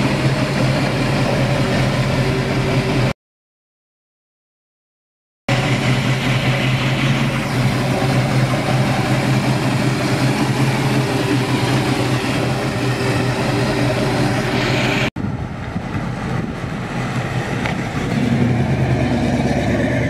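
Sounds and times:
car engine idling: 0.0s - 3.1s, 5.5s - 20.0s.

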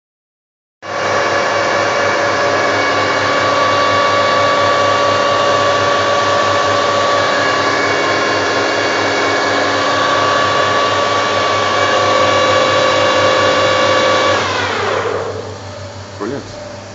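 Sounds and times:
lathe spindle winding down: 0.9s - 16.0s
lathe motor whining: 0.9s - 16.9s.

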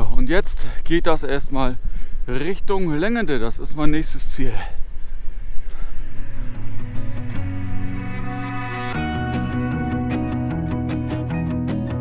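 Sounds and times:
wind rumbling on microphone: 0.0s - 8.6s
background music: 5.9s - 12.0s.

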